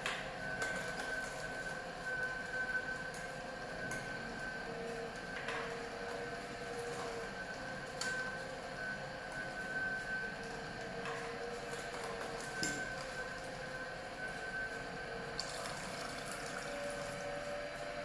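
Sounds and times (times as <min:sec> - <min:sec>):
juicer running with high tone: 0:00.0 - 0:18.0.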